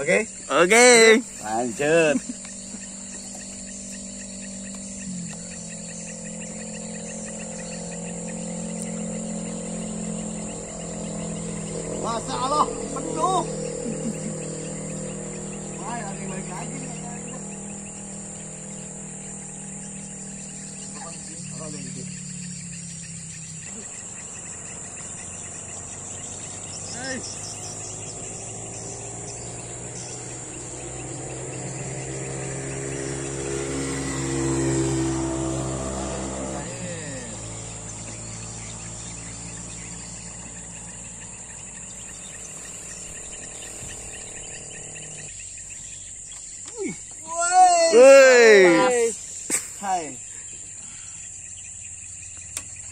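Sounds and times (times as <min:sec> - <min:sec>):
vehicle passing: 0:00.0 - 0:46.3
insects droning: 0:00.0 - 0:52.9
low hum: 0:01.2 - 0:46.2.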